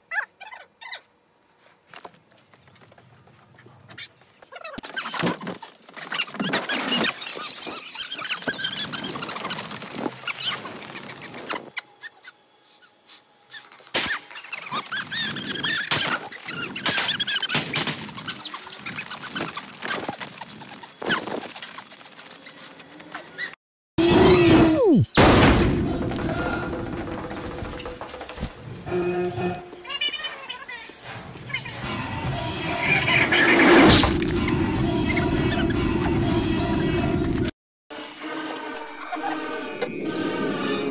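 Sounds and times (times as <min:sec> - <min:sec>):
high wavering cry: 0:24.0 - 0:25.2.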